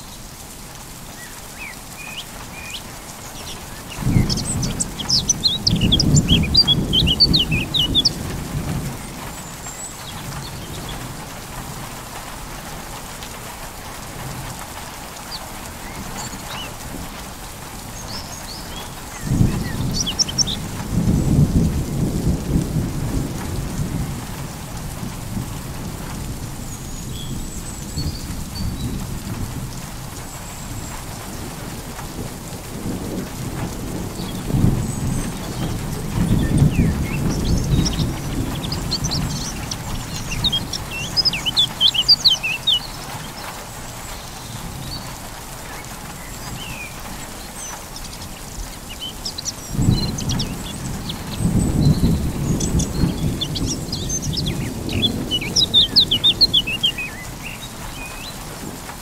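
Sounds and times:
steady rain: 0.0 - 59.0
bird chirps: 1.2 - 8.2, 18.1 - 20.6, 36.3 - 43.5, 48.9 - 58.4
thunder rumbling: 2.5 - 59.0.

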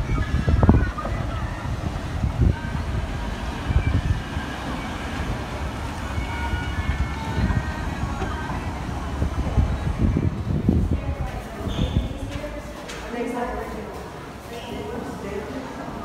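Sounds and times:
sea surf roaring: 0.0 - 11.2
faint distant voices: 0.0 - 16.0
wind buffeting microphone: 0.0 - 16.0.

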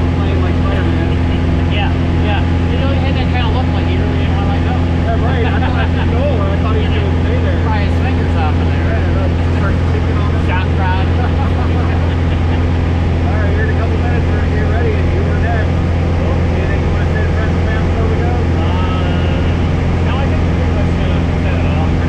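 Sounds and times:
muffled voices talking: 0.0 - 22.0
plane engine and propeller drone: 0.0 - 22.0.

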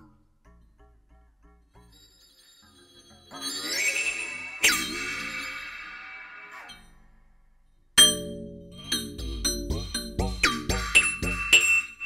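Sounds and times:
electronic drum metallic hits: 8.0 - 11.9.

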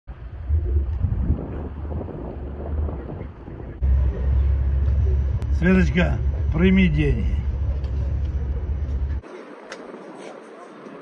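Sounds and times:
wind buffeting microphone: 0.1 - 5.5
steady noisy background: 0.1 - 11.0.

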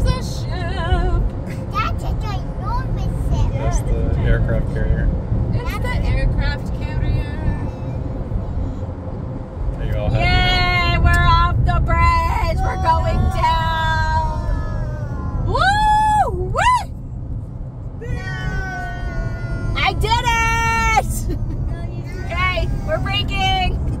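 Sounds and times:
car road noise from inside: 0.0 - 24.0.

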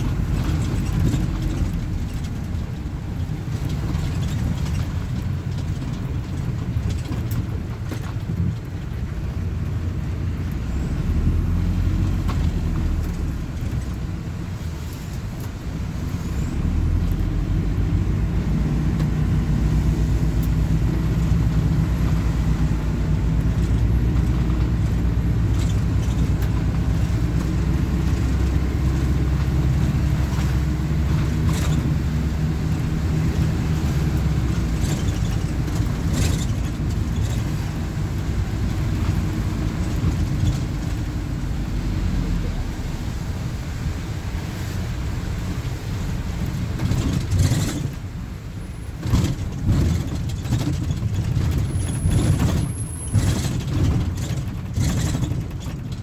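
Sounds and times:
interior clicks and rattles: 0.0 - 42.7, 45.0 - 56.0
diesel engine rumble: 0.0 - 56.0
road and tyre noise: 0.0 - 56.0.

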